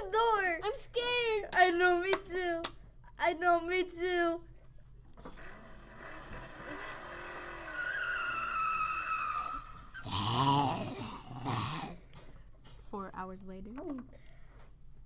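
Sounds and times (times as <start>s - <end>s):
tyres squealing: 7.4s - 10.2s.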